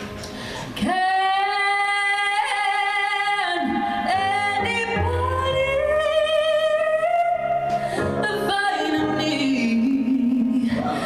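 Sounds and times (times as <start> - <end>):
woman singing: 0.8 - 11.0.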